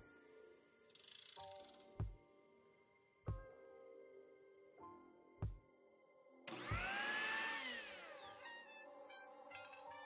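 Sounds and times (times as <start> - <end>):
mixer grinder motor whine: 6.5 - 8.7.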